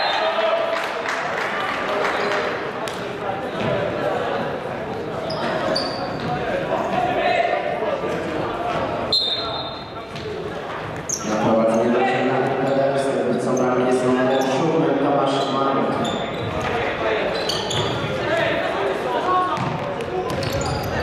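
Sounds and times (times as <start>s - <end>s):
shoe squeaks on hardwood: 5.2s - 6.3s, 17.3s - 18.1s, 20.3s - 21.0s.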